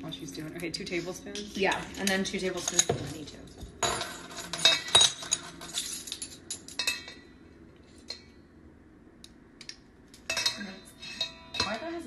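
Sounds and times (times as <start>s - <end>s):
metal spoons clinking on bowl: 1.3s - 7.4s, 10.2s - 12.0s.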